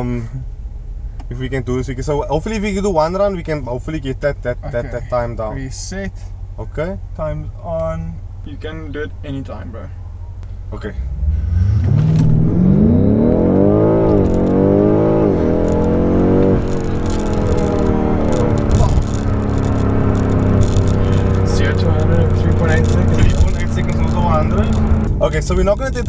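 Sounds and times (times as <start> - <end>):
car engine revving with upshifts: 7.4 - 26.0.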